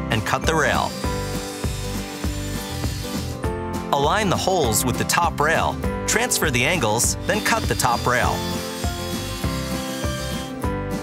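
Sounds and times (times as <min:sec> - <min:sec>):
background music: 0:00.0 - 0:11.0
miter saw cutting railing: 0:00.2 - 0:03.4, 0:06.7 - 0:10.6.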